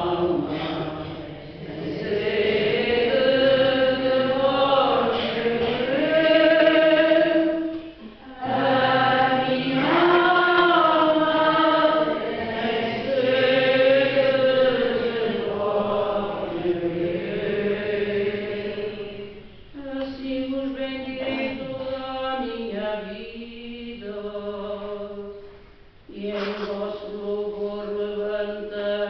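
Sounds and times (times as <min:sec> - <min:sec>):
church choir chant-like singing: 0:00.0 - 0:25.4, 0:26.1 - 0:29.0.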